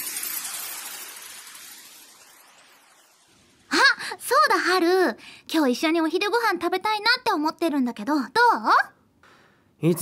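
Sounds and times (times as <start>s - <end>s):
hissing glassy sweep effect: 0.0s - 3.8s.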